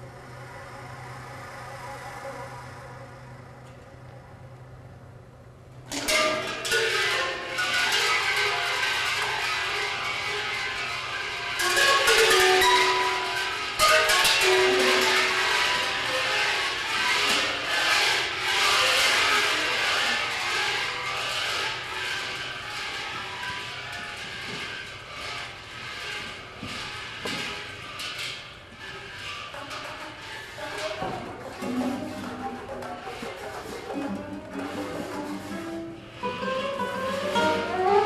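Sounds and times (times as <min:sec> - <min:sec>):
held flute tones: 0:00.0 - 0:04.8, 0:30.0 - 0:38.0
percussion strokes: 0:00.0 - 0:38.0.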